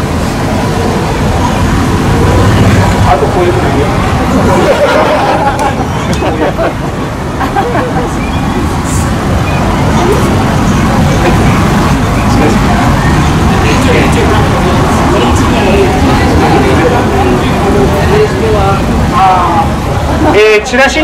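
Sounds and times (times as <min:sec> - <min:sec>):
traffic rumble: 0:00.0 - 0:21.0
people talking indistinctly: 0:00.8 - 0:21.0.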